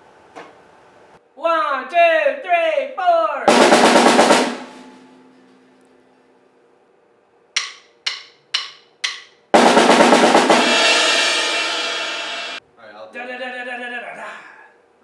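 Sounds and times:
cymbal crash: 3.5 - 5.4, 9.6 - 12.6
drumstick clicks: 7.6 - 9.4
rock band playing: 9.6 - 12.6.

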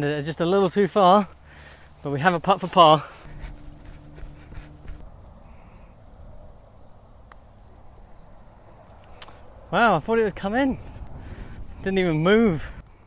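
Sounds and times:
insects chirring: 0.0 - 13.0.

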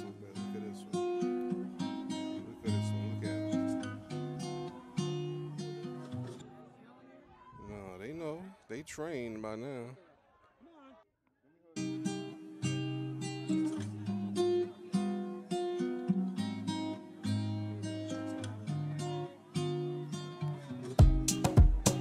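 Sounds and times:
acoustic guitar plucked and strummed: 0.0 - 6.6, 11.8 - 22.0.

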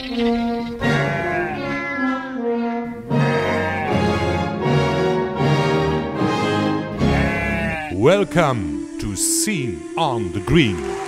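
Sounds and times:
music with sustained chords: 0.0 - 11.0.

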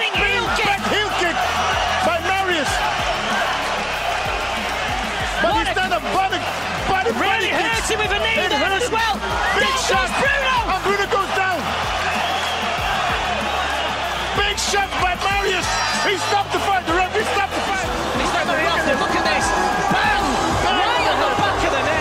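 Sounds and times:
background music with bass notes: 0.0 - 22.0
crowd shouting and cheering: 0.0 - 22.0.

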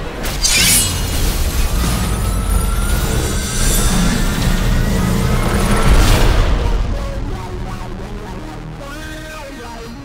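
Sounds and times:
trailer music: 0.0 - 9.5
deep impact boom: 1.2 - 8.2.

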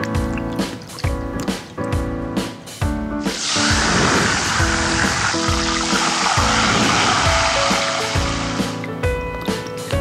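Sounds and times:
background music with steady beat: 0.0 - 10.0
flames hissing: 3.3 - 8.6.

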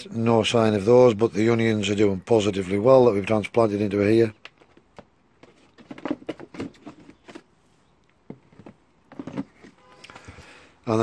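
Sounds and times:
plastic trays clicking and rustling: 4.4 - 7.5, 8.3 - 10.3.

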